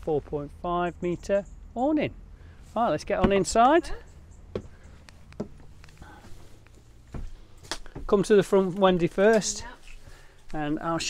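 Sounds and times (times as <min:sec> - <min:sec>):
footsteps on step and floor: 0:03.0 - 0:03.9, 0:04.5 - 0:10.6.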